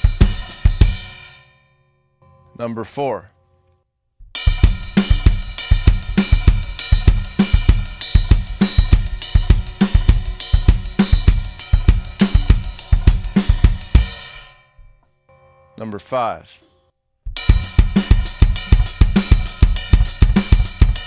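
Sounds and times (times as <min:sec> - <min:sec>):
bass drum paired notes: 0:00.0 - 0:01.2, 0:04.2 - 0:14.3, 0:17.3 - 0:21.0
drum kit playing funk groove: 0:00.0 - 0:01.3, 0:04.3 - 0:14.4, 0:17.3 - 0:21.0
hi-hat and cymbal pattern: 0:00.0 - 0:01.3, 0:04.3 - 0:14.6, 0:17.4 - 0:21.0.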